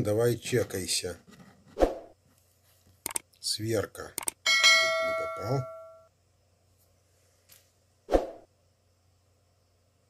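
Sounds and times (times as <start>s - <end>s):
electronic bell-like ding: 4.5s - 6.1s.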